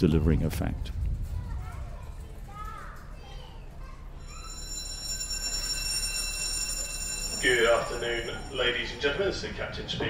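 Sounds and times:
low rumble of ship: 0.0 - 2.8
ferry alarm steady high tone: 4.1 - 9.8.

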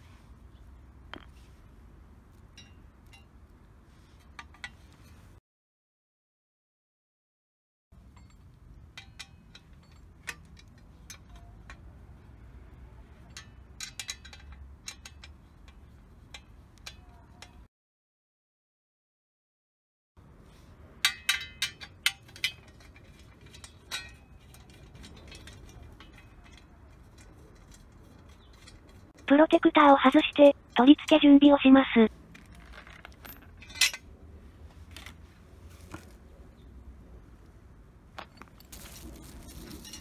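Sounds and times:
light metallic clicks and clinks: 8.0 - 12.0, 13.1 - 17.7, 21.0 - 29.2.

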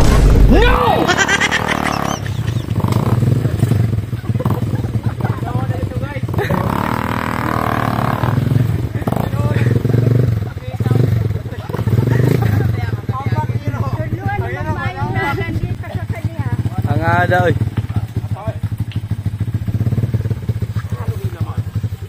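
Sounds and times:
people's voices: 0.0 - 7.2, 8.3 - 18.7
motorcycle engine revving: 0.0 - 22.0.

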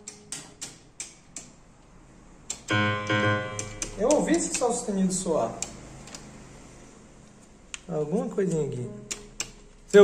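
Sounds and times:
piano-like keyboard note: 2.7 - 3.8
plastic keyboard keys clacking: 3.6 - 4.8.

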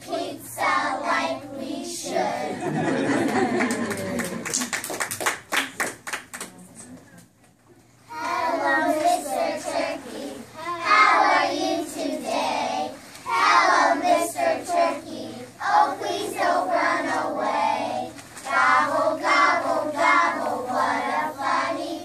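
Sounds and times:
young children singing: 0.0 - 2.9, 8.1 - 22.0
hand claps: 3.2 - 6.6.

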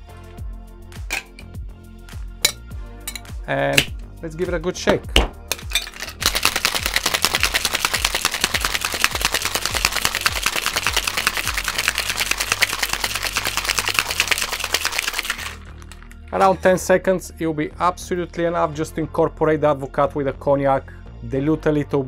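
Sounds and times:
ice rattling in cocktail shaker: 5.5 - 16.2.

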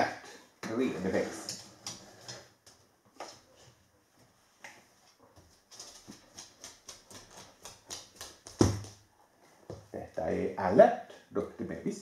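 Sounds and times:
dog claws clicking on wood floor: 5.4 - 9.0.

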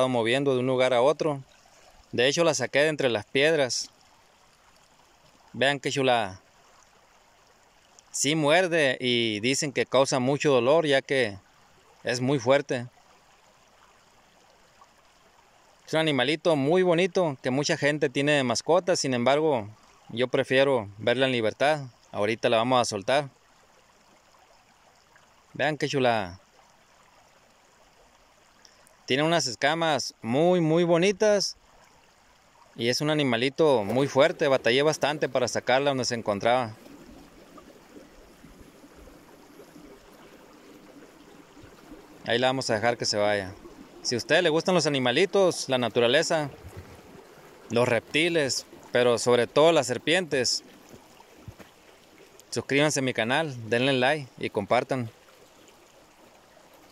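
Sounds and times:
hiss of stream water: 1.3 - 8.6, 23.2 - 29.2, 30.1 - 56.9.

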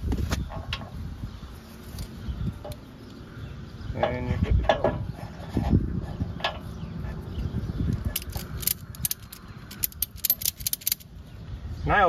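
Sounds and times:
wind rumble on microphone: 0.0 - 2.8, 3.4 - 12.0
ratchet strap clicking: 8.1 - 11.1.

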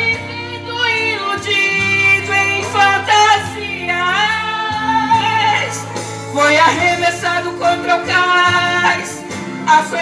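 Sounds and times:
person singing a hymn: 0.0 - 10.0
sustained instrumental accompaniment: 0.0 - 10.0.

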